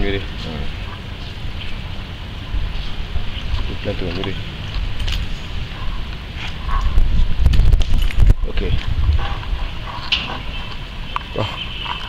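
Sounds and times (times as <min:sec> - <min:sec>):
low microphone rumble: 0:00.0 - 0:11.1.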